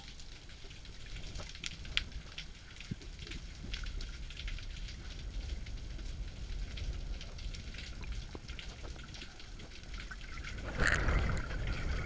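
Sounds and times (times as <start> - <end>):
faint crackling clicks: 0.0 - 12.0
low rumble of moving water: 0.0 - 12.0.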